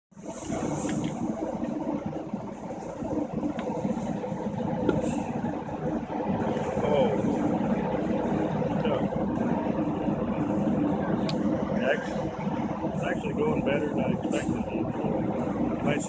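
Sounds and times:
machinery drone: 0.1 - 16.0.

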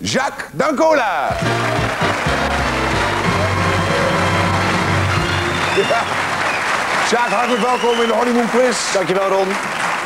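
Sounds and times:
audience applauding: 1.3 - 10.0.

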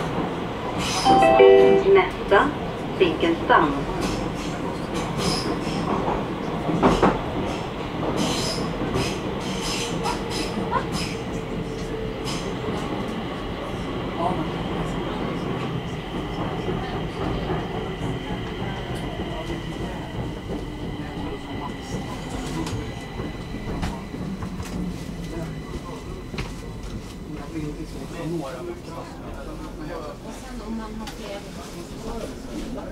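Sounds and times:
train rumbling through tunnel: 0.0 - 32.9.

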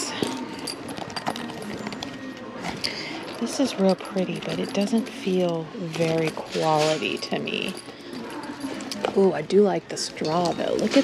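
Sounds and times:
handbag chains and clasps clicking: 0.0 - 11.0.

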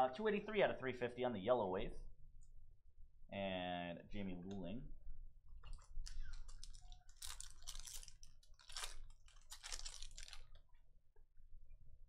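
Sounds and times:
foil wrapper crinkling: 5.6 - 10.7.

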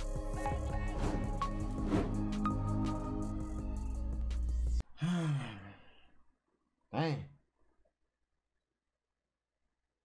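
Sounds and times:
man sighing: 4.9 - 6.0.

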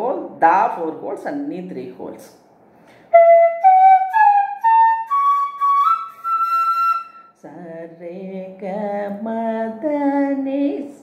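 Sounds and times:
bamboo flute playing ascending scale: 3.1 - 7.3.

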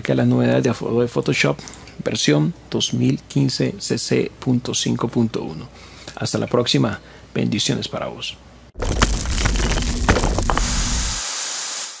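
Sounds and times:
bright steady hiss: 10.4 - 12.0.

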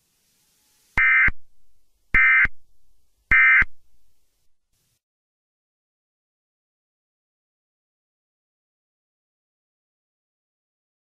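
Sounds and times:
buzzing digital tone bursts: 1.0 - 1.4, 2.2 - 2.6, 3.3 - 3.7.

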